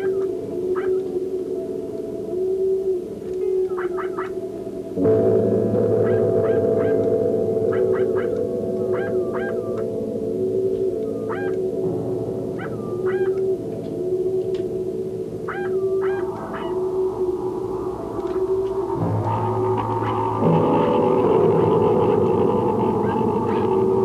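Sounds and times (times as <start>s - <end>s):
ambient electronic drone music: 0.0s - 24.0s.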